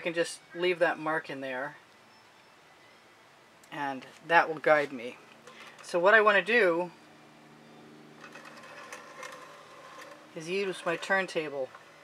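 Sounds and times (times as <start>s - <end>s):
turntable rolling rumble: 8.2s - 12.0s.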